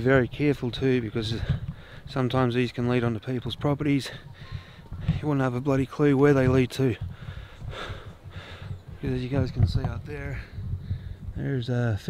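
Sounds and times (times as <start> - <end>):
low microphone rumble: 0.0 - 12.0
man breathing: 1.4 - 2.1, 4.0 - 5.2, 7.1 - 9.0, 10.4 - 11.4.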